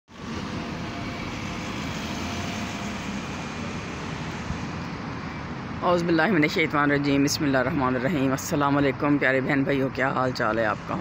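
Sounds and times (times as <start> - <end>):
road traffic passing: 0.1 - 11.0.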